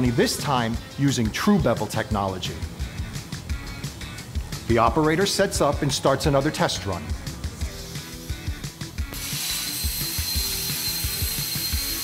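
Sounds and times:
plasma torch hissing: 7.7 - 12.0
thin high whine: 9.1 - 12.0.

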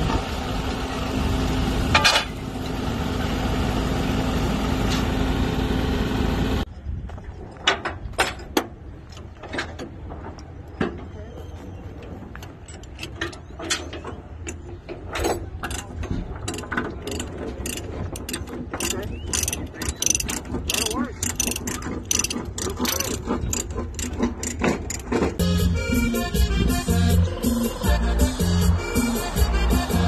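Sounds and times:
ratchet strap clicking: 15.6 - 25.4.

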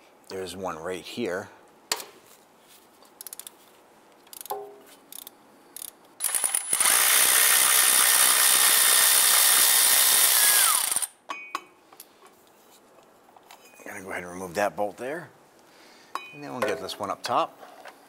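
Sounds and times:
hand socket ratchet clicks: 4.3 - 6.9
cordless electric ratchet whine: 6.2 - 11.1.

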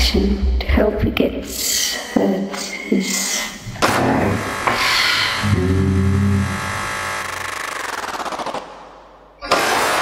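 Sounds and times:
electronic stuttering rattling pulse: 3.9 - 8.8.

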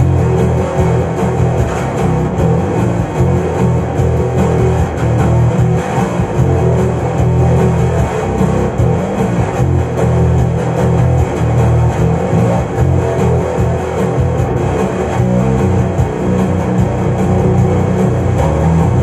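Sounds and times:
fingered electric bass guitar: 0.0 - 19.0.

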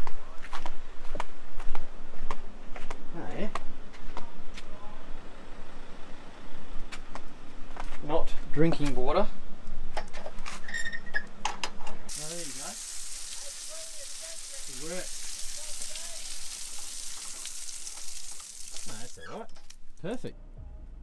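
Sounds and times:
shower running: 12.1 - 19.3.

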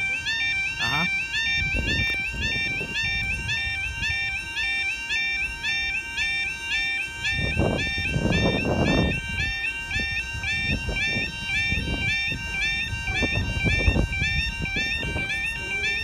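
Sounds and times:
person speaking: 0.0 - 1.2
level crossing alarm warbling: 0.0 - 16.0.

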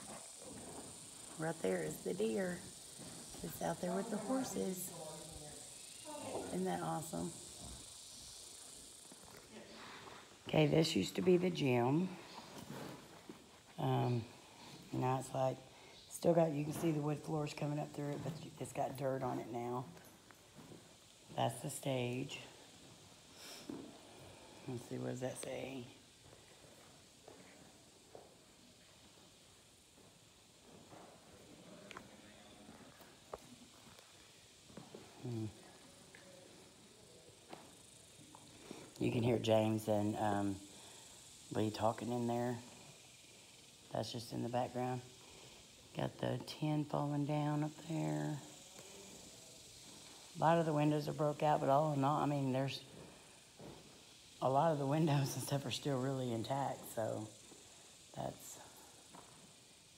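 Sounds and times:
faint background hiss: 0.0 - 59.9.

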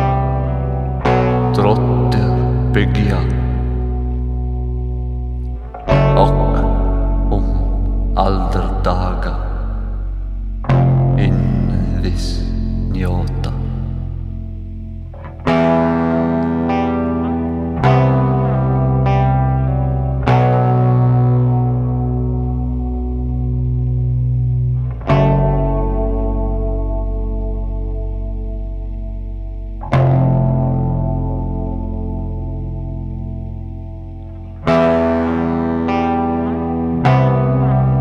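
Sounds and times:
slow guitar chords ringing: 0.0 - 38.0.

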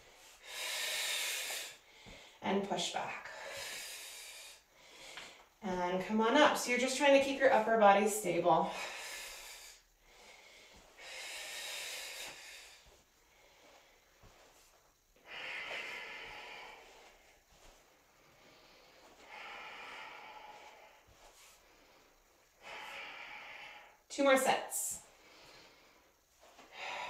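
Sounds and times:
woman breathing with exertion: 0.0 - 2.4, 3.0 - 5.6, 8.6 - 24.2, 24.8 - 27.0.

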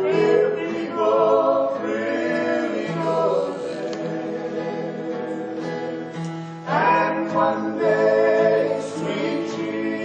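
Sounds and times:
group singing gospel in harmony: 0.0 - 10.0.

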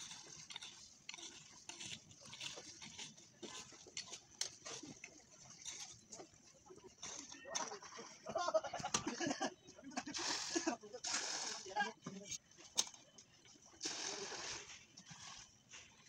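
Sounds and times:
shovels scraping wet gravel: 0.0 - 6.1, 10.0 - 11.9, 13.8 - 16.0.

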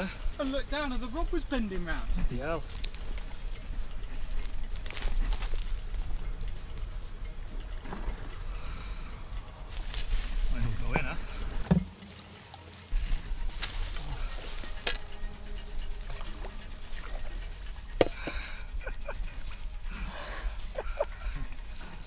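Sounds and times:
rustling: 0.0 - 22.0.

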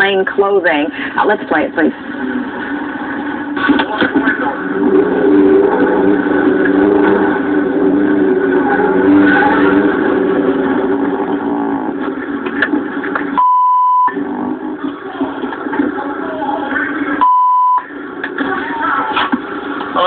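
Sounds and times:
vehicle engine running: 0.0 - 20.0
censor bleep: 13.4 - 14.2, 17.2 - 17.9.

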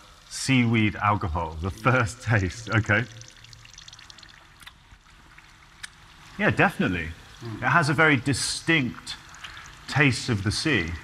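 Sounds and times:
thin trickle of liquid into bowl: 0.0 - 11.0.

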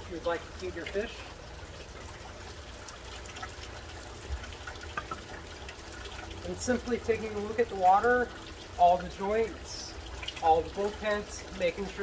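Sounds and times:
low steady hum: 0.0 - 12.0
water trickling into tank: 0.0 - 12.0.

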